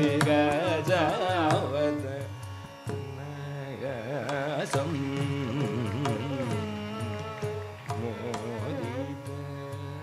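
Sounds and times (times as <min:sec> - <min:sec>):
classical indian melody: 0:00.0 - 0:10.0
tanpura drone: 0:00.0 - 0:10.0.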